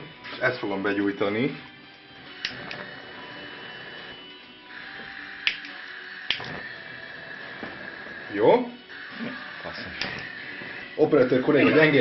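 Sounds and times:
gas hissing from burner: 0.0s - 12.0s
sharp clicks: 5.4s - 6.6s.

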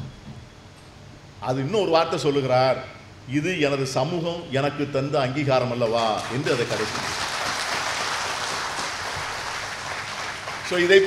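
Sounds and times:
audience applauding: 6.1s - 11.0s.

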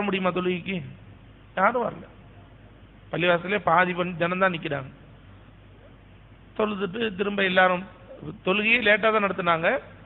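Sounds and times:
man speaking: 6.6s - 10.0s.

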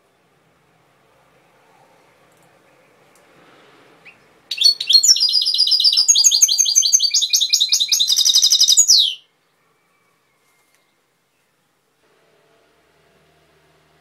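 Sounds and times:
goldfinch twittering song: 4.1s - 9.2s.

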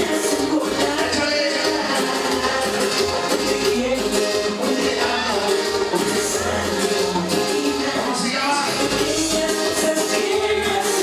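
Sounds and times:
live band playing latin dance music: 0.0s - 11.0s.

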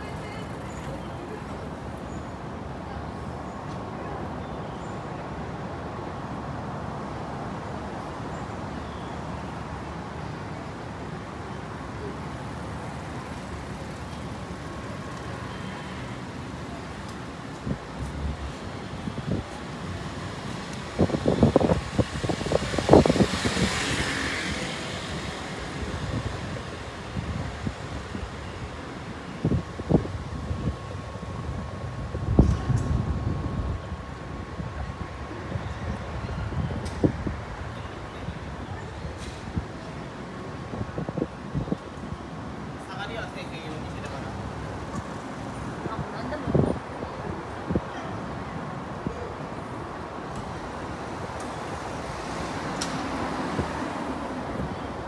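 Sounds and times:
traffic hum: 0.0s - 55.0s
vehicle passing: 21.0s - 27.6s.

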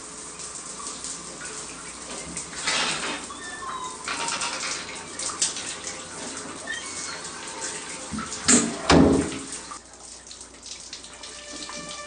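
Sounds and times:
shower water running and splashing: 0.0s - 12.0s.

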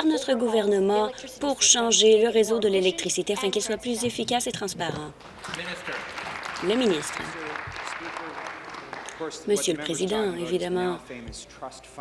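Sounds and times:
crowd applauding: 5.2s - 9.6s.

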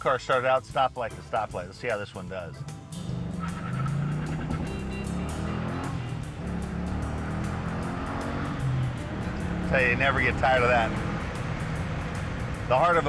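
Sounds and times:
music playing: 0.0s - 13.0s
car engine accelerating hard: 3.0s - 13.0s.

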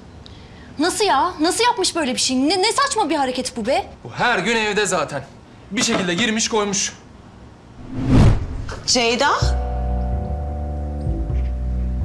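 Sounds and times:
whoosh with deep rumble: 7.8s - 8.9s.

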